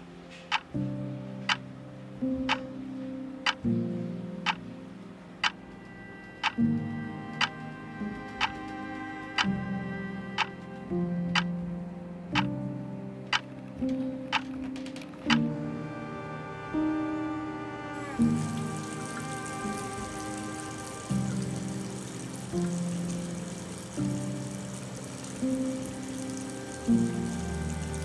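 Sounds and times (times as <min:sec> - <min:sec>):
soft background music of chords: 0:00.0 - 0:28.0
clock ticking: 0:06.4 - 0:06.6.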